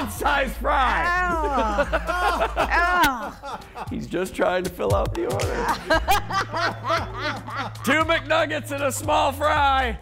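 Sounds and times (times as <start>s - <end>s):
person chuckling: 1.2s - 4.0s, 5.3s - 7.9s.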